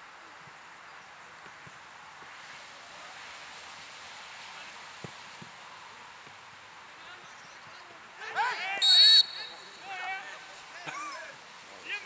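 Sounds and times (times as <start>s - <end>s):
rustling leaves: 0.0s - 12.0s
wind: 0.0s - 12.0s.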